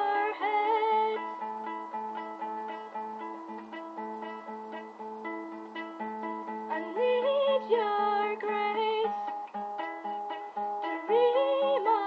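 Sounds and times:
classical guitar playing: 0.0s - 12.0s.

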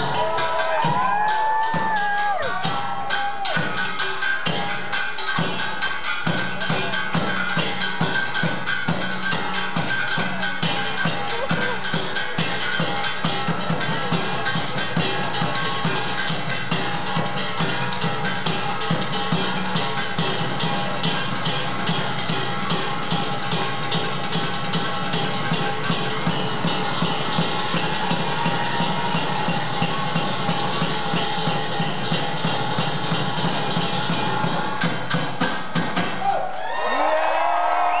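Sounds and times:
crowd cheering and whistling: 0.0s - 4.0s, 27.9s - 30.3s, 36.2s - 38.0s
drum kit and percussion playing: 0.0s - 38.0s.

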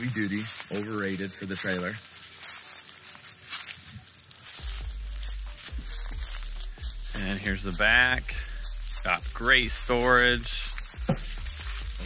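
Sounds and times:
footsteps crunching on dry leaves: 0.0s - 12.0s
rustling hiss: 0.0s - 12.0s.

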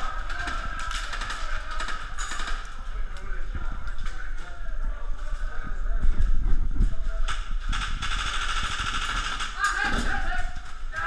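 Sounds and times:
airsoft rifle full-auto burst: 7.7s - 9.7s.

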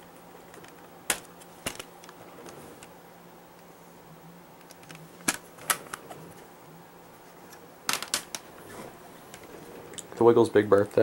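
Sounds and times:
plastic cases clacking: 7.9s - 8.5s.

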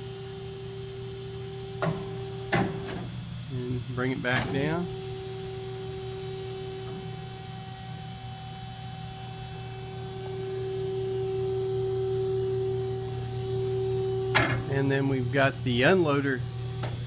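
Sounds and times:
machine hum with steady whine: 0.0s - 17.0s.

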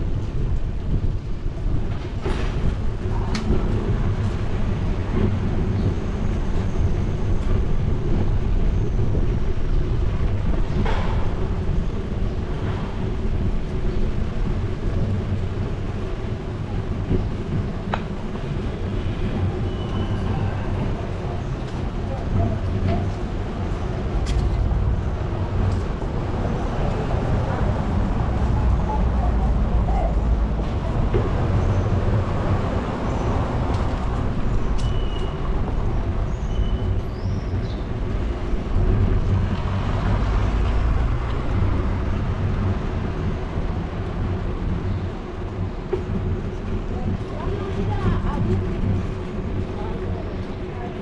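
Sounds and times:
road traffic rumble: 0.0s - 51.0s.

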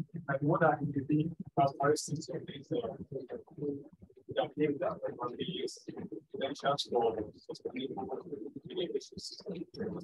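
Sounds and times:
faint indistinct speech: 0.0s - 10.0s.

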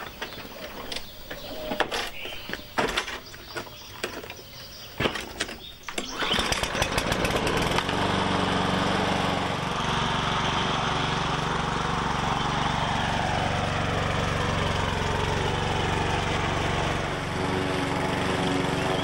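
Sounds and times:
lawn mower engine running: 0.0s - 19.0s
lawn mower pull-start: 0.0s - 19.0s.

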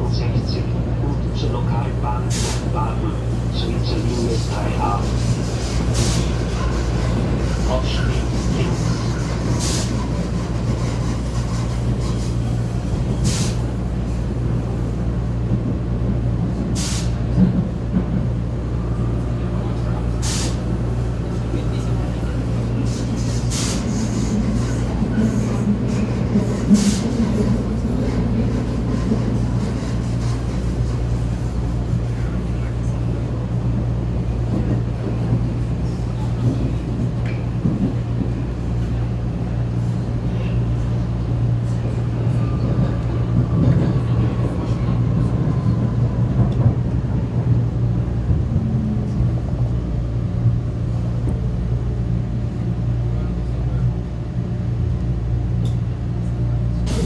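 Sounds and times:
train rumbling through tunnel: 0.0s - 57.0s.

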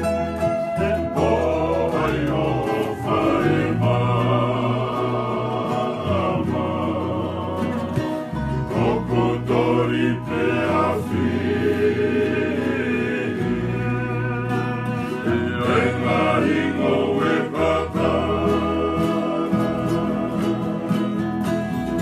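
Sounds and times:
men singing in harmony: 0.0s - 21.7s
bass guitar: 0.0s - 22.0s
strummed acoustic guitar: 0.0s - 22.0s
ukulele: 0.0s - 22.0s.

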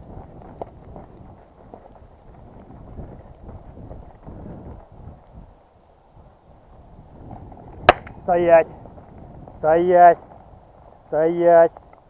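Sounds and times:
footsteps through dry grass: 0.0s - 12.0s.

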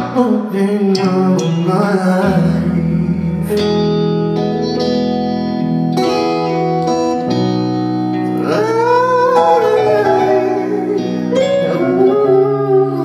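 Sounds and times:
person singing: 0.0s - 3.8s, 8.3s - 13.0s
live band playing chords: 0.0s - 13.0s.

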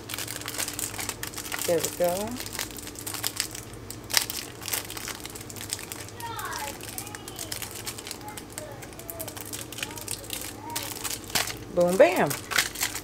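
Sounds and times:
plastic sleeve crinkling: 0.0s - 13.0s.

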